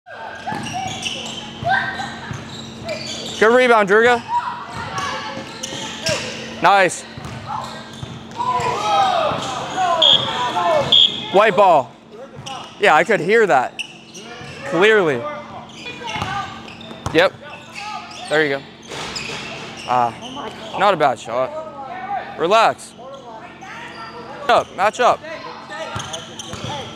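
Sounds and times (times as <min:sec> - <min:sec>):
sneaker squeaks: 0:00.1 - 0:11.4, 0:12.0 - 0:12.9, 0:13.6 - 0:21.0, 0:22.9 - 0:26.9
basketball bouncing on hardwood: 0:07.2 - 0:07.4
basketball bouncing on wooden floor: 0:07.2 - 0:08.3.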